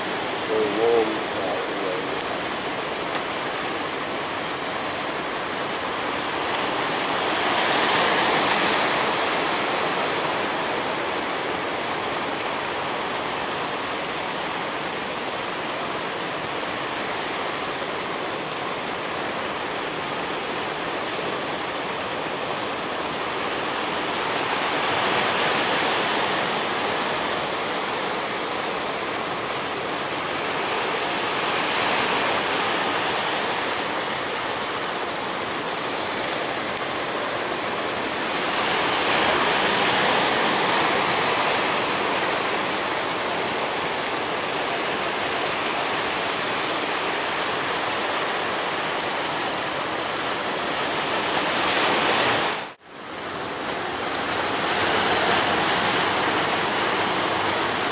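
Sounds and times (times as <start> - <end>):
ocean waves breaking: 0.0 - 57.9.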